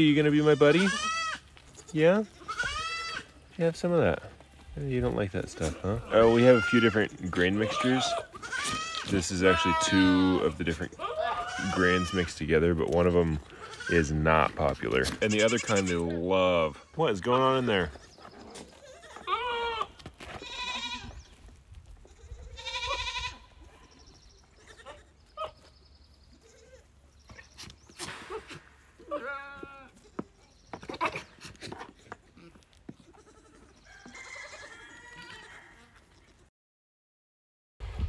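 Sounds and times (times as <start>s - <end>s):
goats bleating: 0.0s - 3.4s, 5.5s - 12.7s, 13.3s - 21.3s, 22.0s - 23.8s, 24.5s - 25.6s, 29.0s - 36.5s.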